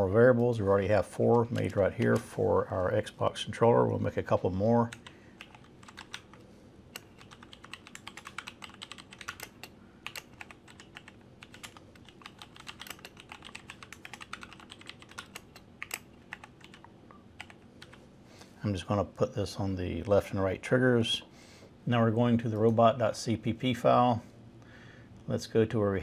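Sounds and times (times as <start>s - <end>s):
typing on computer keyboard: 4.8s - 18.0s.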